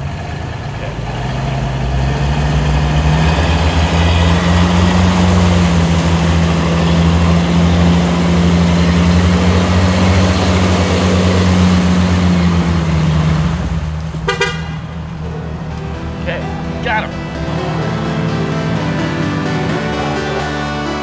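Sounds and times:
car engine revving: 0.0 - 21.0.

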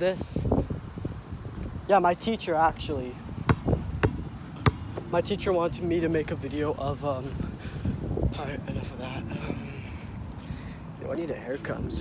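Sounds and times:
basketball bouncing on hard ground: 3.3 - 5.5.

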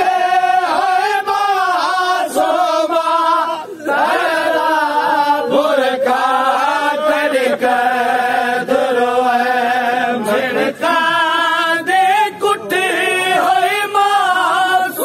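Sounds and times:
men chanting a lament: 0.0 - 15.0.

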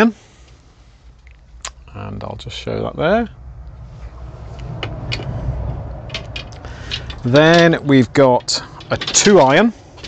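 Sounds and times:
low rumble: 3.2 - 7.4
golf clubs clicking and knocking: 4.6 - 10.0.

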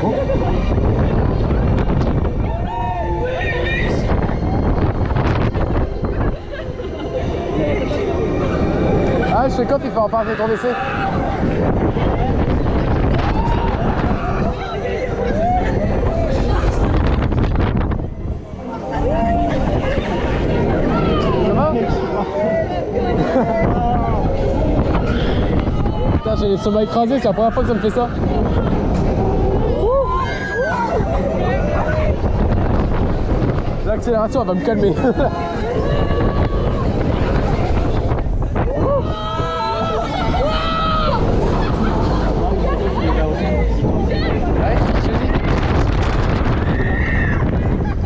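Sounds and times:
wind buffeting microphone: 0.0 - 48.0
riders shouting and shrieking: 38.6 - 44.5, 46.4 - 48.0.

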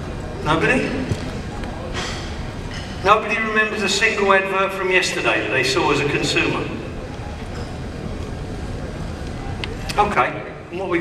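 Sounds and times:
low rumbling hall room noise: 0.0 - 11.0.

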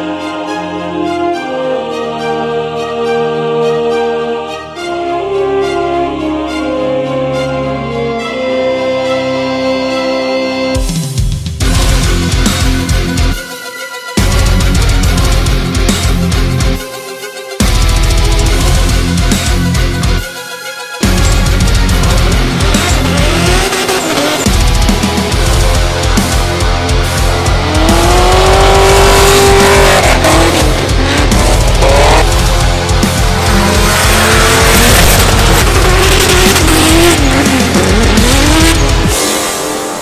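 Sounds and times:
loud heavy metal music: 0.0 - 40.0
car engine revving: 21.1 - 40.0.

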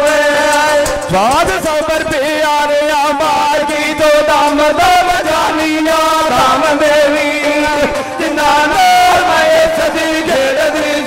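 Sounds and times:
man singing through microphone: 0.0 - 11.0.

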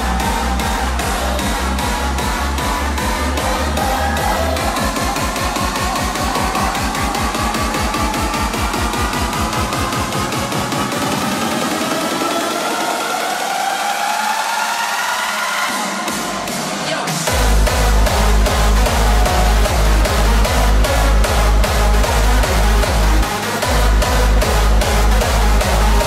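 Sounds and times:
heavy kick drum: 0.0 - 11.7, 16.1 - 26.0
hardstyle dance track: 0.0 - 26.0.

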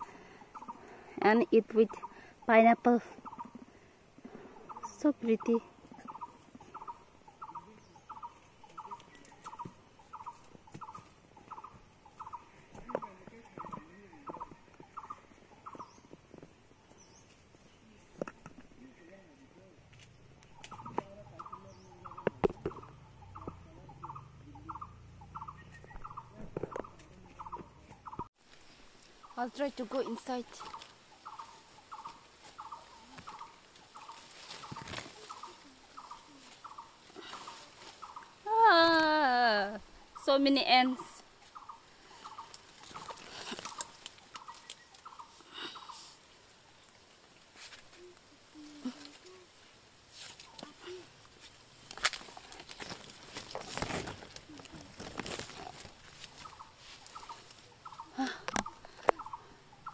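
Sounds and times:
leaves rustling: 0.0 - 59.9
twigs snapping: 19.9 - 21.5, 30.6 - 38.4, 41.5 - 45.3, 50.2 - 57.6, 58.4 - 59.3
animal chirping call: 20.6 - 28.3.

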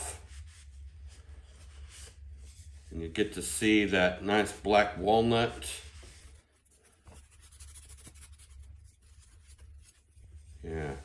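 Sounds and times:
towel rubbing wooden spoon: 0.0 - 3.8, 5.1 - 11.0.

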